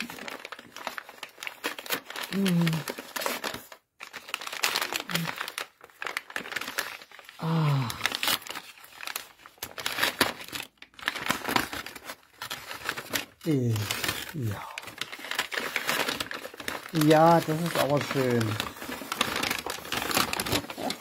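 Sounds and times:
wrapping paper crinkling and tearing: 0.0s - 21.0s.

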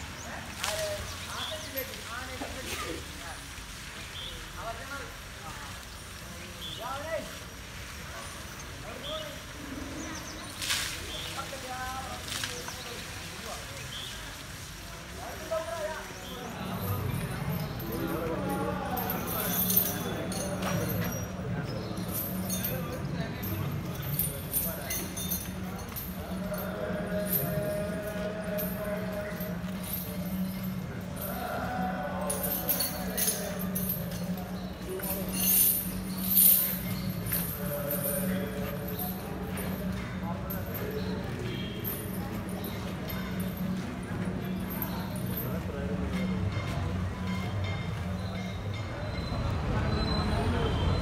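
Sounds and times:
people talking: 0.0s - 51.0s.

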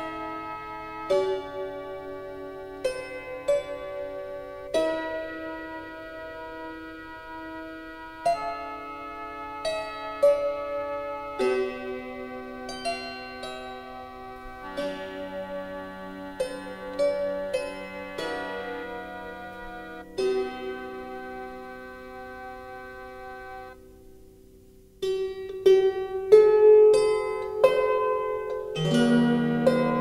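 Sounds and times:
harp notes plucked: 8.2s - 23.8s, 25.0s - 30.0s.

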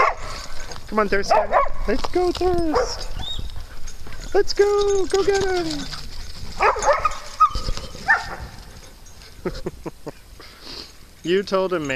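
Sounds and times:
dog barking high: 0.0s - 0.4s, 1.2s - 1.9s, 6.6s - 8.5s.

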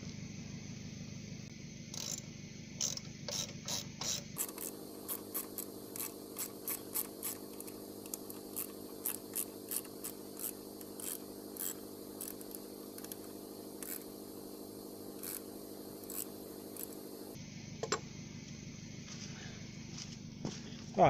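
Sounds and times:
ratcheting screwdriver clicking: 2.8s - 14.0s.

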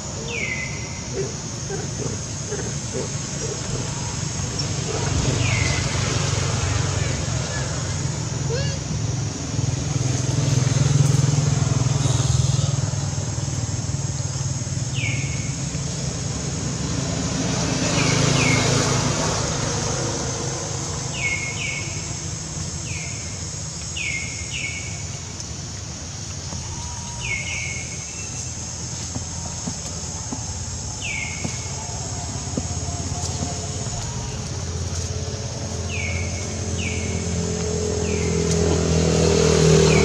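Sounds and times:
steady high hiss: 0.0s - 40.0s.

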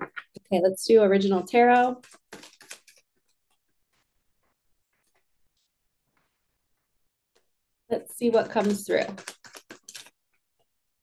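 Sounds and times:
cards being shuffled: 1.9s - 3.2s.

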